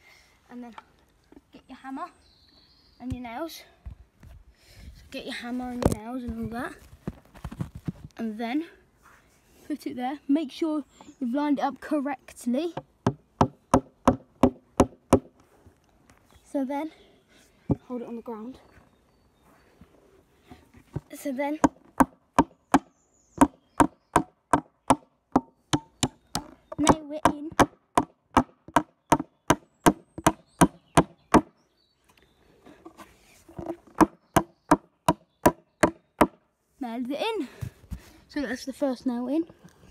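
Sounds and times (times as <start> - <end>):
hammer driving nail into wood: 27.6 - 31.5.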